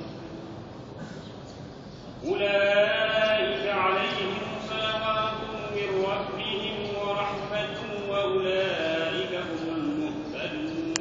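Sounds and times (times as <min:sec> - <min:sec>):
echoing hall room noise: 0:00.0 - 0:11.0.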